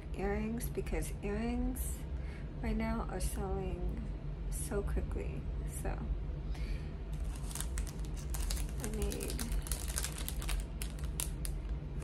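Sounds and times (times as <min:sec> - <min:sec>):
steady low hum: 0:00.0 - 0:12.0
plastic bags clicking and crinkling: 0:07.2 - 0:11.7.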